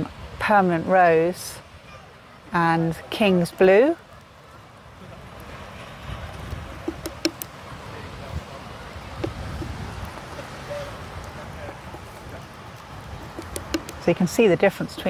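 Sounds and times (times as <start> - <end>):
wind rumbling on microphone: 0.0 - 15.0
sharp clicks and knocks: 6.8 - 7.5, 13.1 - 14.1.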